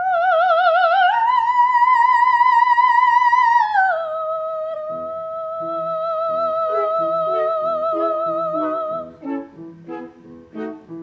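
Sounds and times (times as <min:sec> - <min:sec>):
soft accompanying chords: 0:04.9 - 0:11.0.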